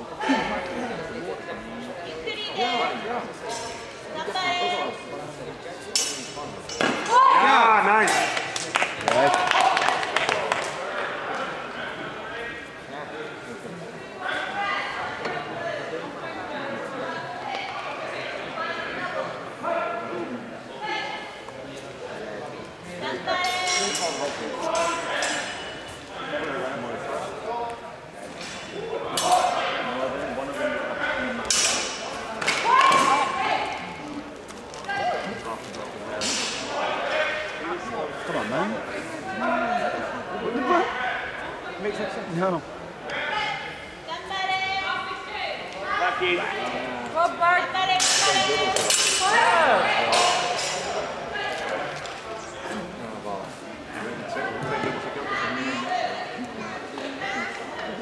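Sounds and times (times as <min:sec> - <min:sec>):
indistinct voices in a hall: 0:00.0 - 0:58.0
sword blades clashing: 0:48.0 - 0:49.5.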